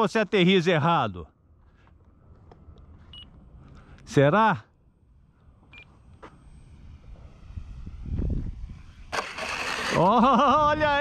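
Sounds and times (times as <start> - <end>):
faint low outdoor rumble: 0.0 - 11.0.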